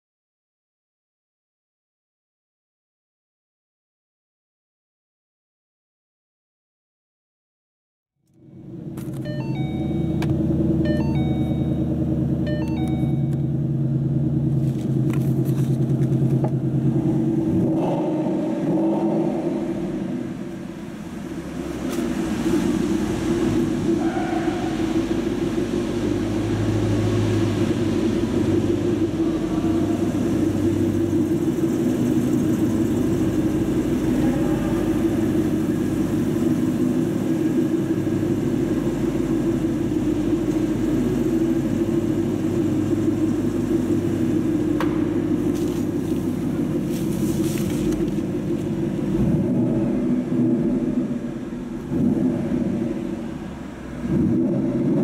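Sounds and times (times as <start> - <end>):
car engine idling: 8.3 - 55.0.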